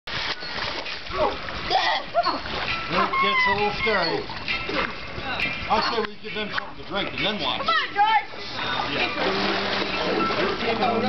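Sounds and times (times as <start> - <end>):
pool water splashing: 0.1 - 11.0.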